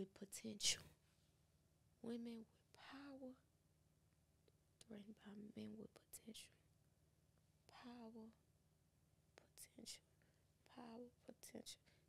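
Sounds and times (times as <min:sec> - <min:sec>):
woman whispering: 0:00.0 - 0:00.8, 0:02.0 - 0:03.4, 0:04.8 - 0:06.6, 0:07.7 - 0:08.4, 0:09.4 - 0:11.9.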